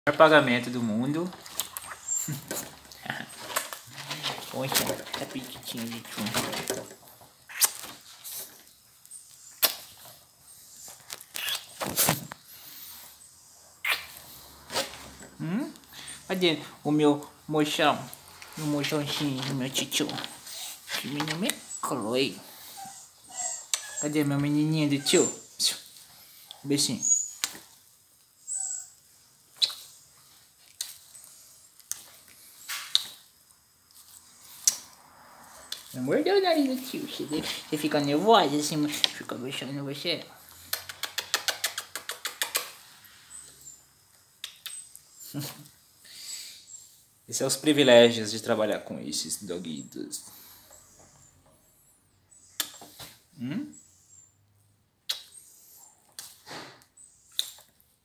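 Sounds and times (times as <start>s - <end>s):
small dog making soft noises: 20.3s - 25.5s.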